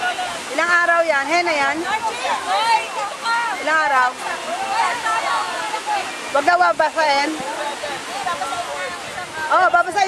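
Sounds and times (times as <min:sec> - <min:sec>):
people talking and calling out: 0:00.0 - 0:10.0
surf rushing on beach: 0:00.0 - 0:10.0.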